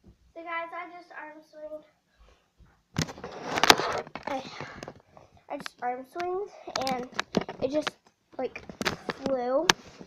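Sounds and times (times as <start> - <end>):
camera handling rustling: 3.0 - 5.0.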